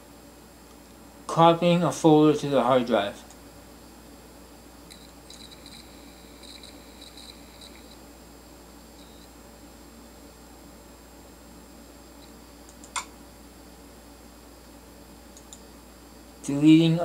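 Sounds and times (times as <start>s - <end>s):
hard drive humming: 0.0s - 17.0s
drive head seeking chirps: 4.8s - 8.0s, 8.9s - 9.3s
sharp click: 12.7s - 13.1s.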